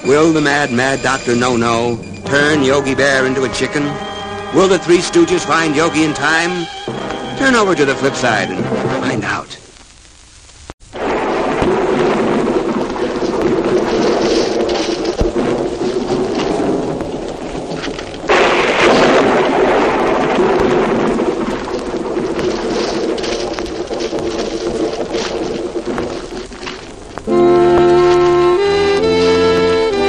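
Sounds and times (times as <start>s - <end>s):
thunder rumbling: 0.0s - 9.8s, 10.8s - 30.0s
rain: 0.0s - 30.0s
steady background music: 0.3s - 9.5s
loud thunderclap: 11.0s - 30.0s.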